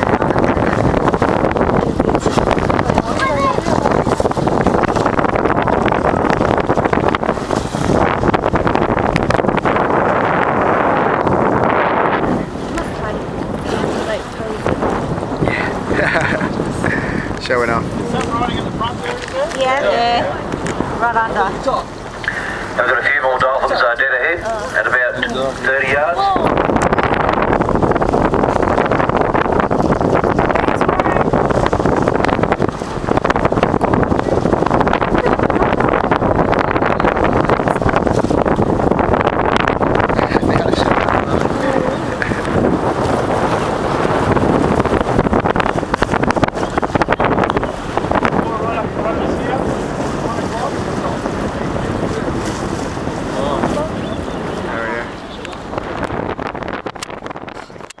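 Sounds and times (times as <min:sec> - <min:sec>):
water rushing past boat bow: 0:00.0 - 0:58.0
wind buffeting microphone: 0:00.0 - 0:58.0.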